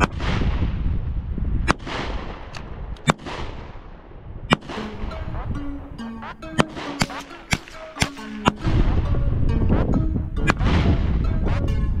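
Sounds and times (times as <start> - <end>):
rifle shots: 1.7 - 5.3, 6.5 - 9.2
background music: 4.5 - 12.0.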